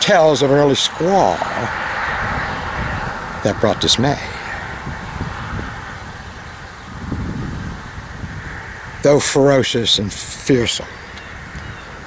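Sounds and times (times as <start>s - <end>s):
outdoor rumble with hiss: 0.0s - 12.0s.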